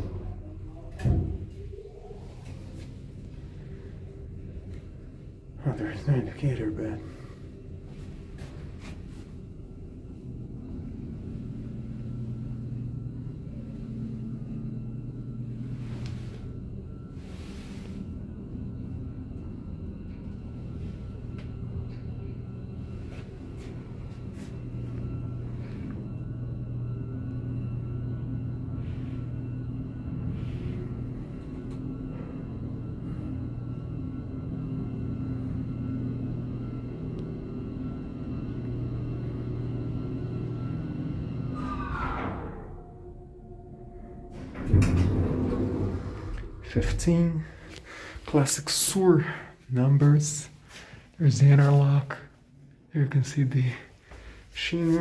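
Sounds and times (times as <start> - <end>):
elevator machinery hum: 0.0 - 55.0
falling whine of elevator: 0.0 - 55.0
sliding door clatter: 44.3 - 47.0.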